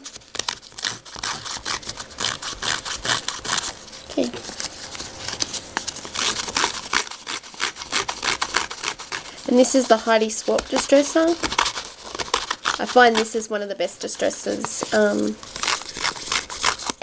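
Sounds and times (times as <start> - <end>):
paper distresser rasping paper: 0.0 - 17.0.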